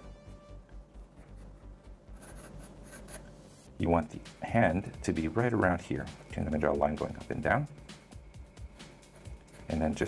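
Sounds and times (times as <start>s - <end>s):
pencil sketching on paper: 1.2s - 3.4s, 8.7s - 10.0s.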